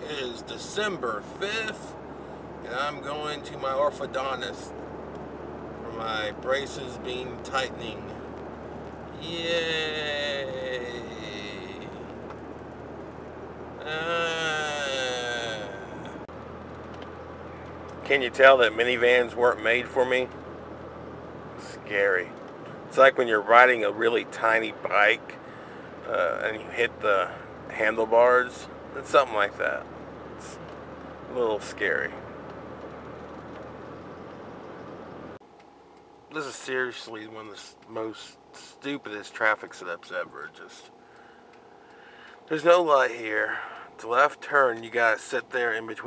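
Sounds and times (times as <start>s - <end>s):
car engine rumble: 0.0s - 46.0s
road noise: 0.0s - 46.0s
man's voice: 2.7s - 4.7s, 5.8s - 8.1s, 9.2s - 12.0s, 13.8s - 16.1s, 26.1s - 29.8s.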